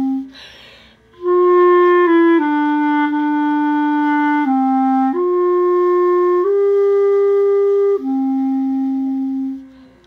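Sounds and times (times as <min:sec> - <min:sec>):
clarinet holding low note: 0:00.0 - 0:00.4, 0:01.1 - 0:10.0.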